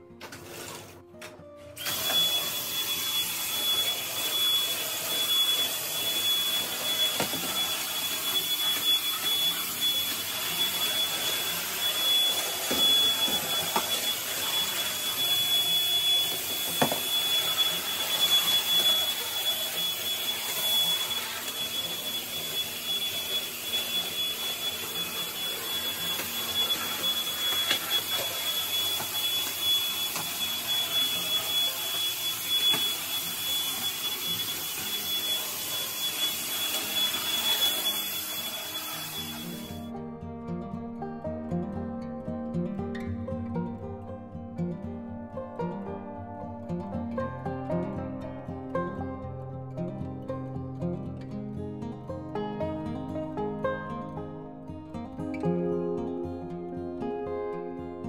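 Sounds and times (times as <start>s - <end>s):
vacuum cleaner motor whining: 0.0s - 39.9s.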